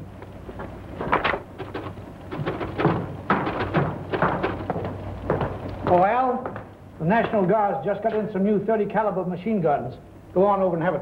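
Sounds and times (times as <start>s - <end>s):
steady low hum: 0.0s - 11.0s
knocks and clatter: 0.5s - 7.4s
papers thudding on a desk: 1.0s - 5.5s.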